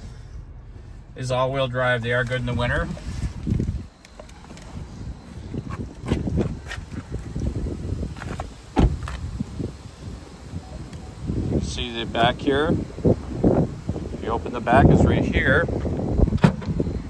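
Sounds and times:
car door shutting thump: 8.2s - 9.2s, 16.3s - 16.8s.

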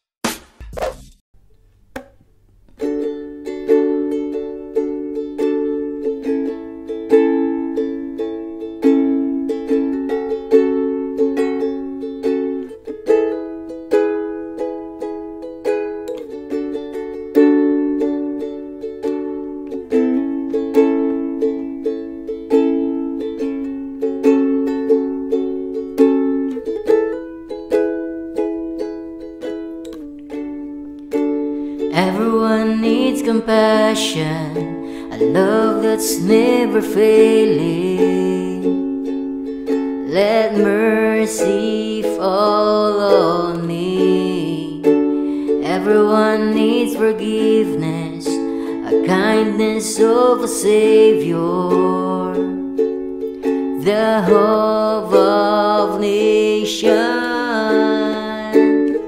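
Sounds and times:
ukulele strumming: 0.2s - 59.0s.

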